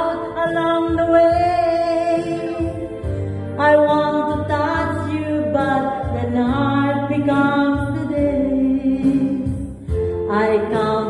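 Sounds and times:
backing music: 0:00.0 - 0:11.0.

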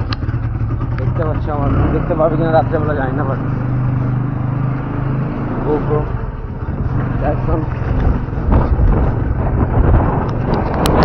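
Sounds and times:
motorcycle engine running: 0:00.0 - 0:11.0
wind rumble on microphone: 0:06.2 - 0:11.0.

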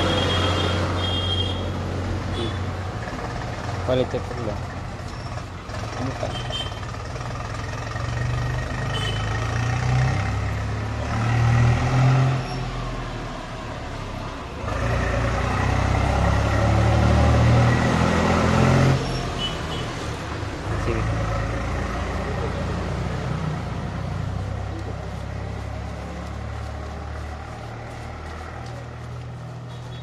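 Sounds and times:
engine rumbling: 0:00.0 - 0:30.0.

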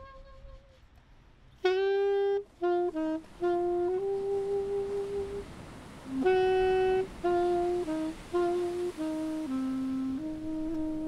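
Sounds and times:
alto saxophone slow melody: 0:00.0 - 0:00.9, 0:01.6 - 0:11.0.

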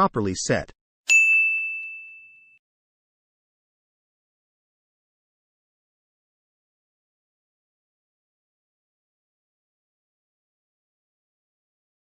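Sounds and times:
bright chime ding: 0:01.1 - 0:02.6.

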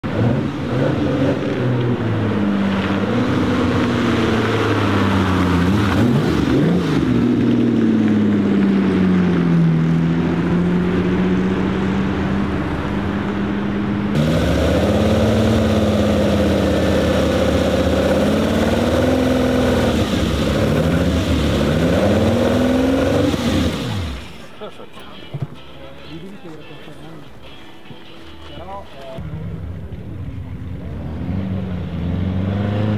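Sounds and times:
car engine revving at low revs: 0:00.0 - 0:24.5, 0:29.2 - 0:32.9.

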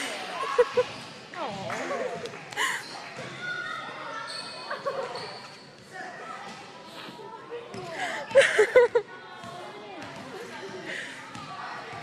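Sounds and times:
basketball bouncing on wooden court: 0:09.4 - 0:10.3.

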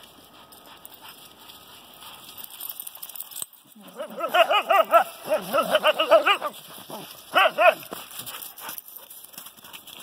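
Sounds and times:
dog play vocalizations: 0:03.8 - 0:07.8.

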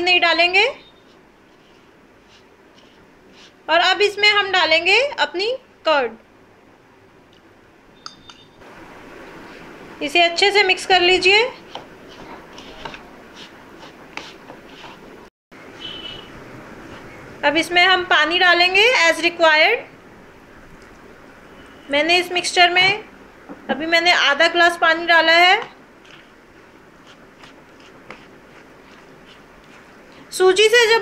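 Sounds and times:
mixture stirred in plastic bowl: 0:01.0 - 0:03.8, 0:11.3 - 0:15.2, 0:16.8 - 0:17.2, 0:25.5 - 0:30.5.

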